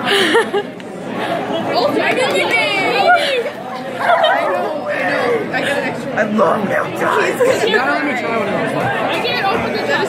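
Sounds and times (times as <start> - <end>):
people laughing: 0.0 - 6.0, 7.0 - 8.3
group chattering excitedly: 0.0 - 10.0.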